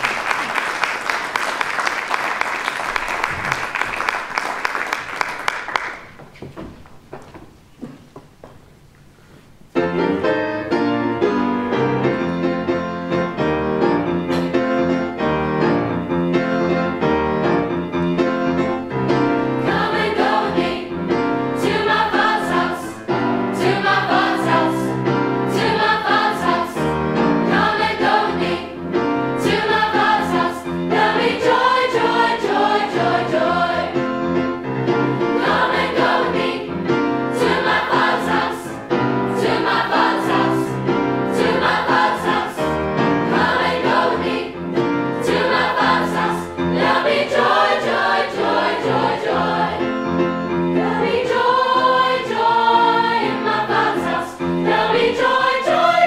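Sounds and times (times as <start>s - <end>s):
youth choir singing: 19.4s - 34.1s, 35.1s - 50.0s, 50.6s - 56.0s.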